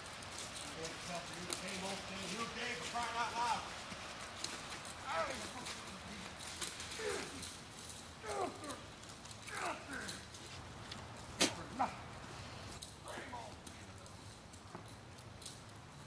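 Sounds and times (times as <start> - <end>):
distant voices crying out: 0.9 - 10.6.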